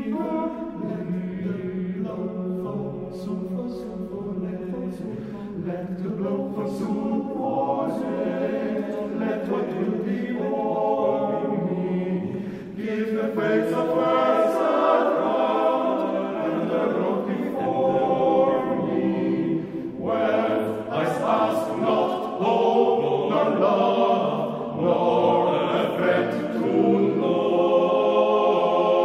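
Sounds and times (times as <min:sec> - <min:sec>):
men's choir singing: 0:00.0 - 0:29.0.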